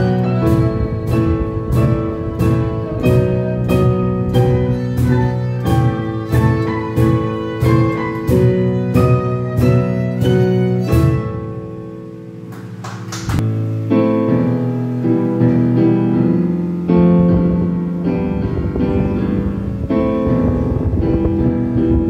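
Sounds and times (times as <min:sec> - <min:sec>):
digital piano chords: 0:00.0 - 0:22.0.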